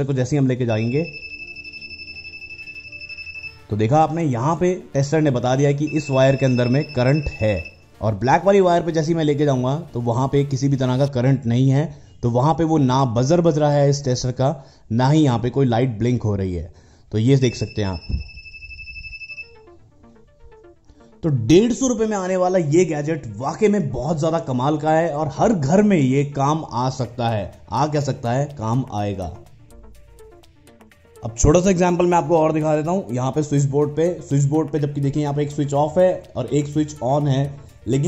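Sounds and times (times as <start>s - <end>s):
faint background music: 0.0s - 38.0s
voltage tester beeping: 0.7s - 4.2s, 5.4s - 8.0s, 17.4s - 21.1s
high-pitched buzzer tone: 0.8s - 3.8s, 5.8s - 8.0s, 17.5s - 20.8s.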